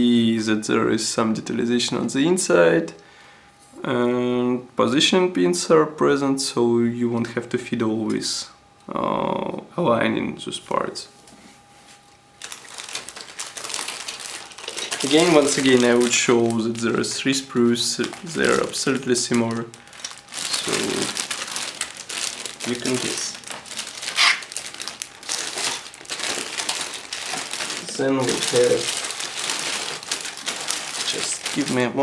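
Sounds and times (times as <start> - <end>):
plastic bag crinkling: 12.4 - 32.0.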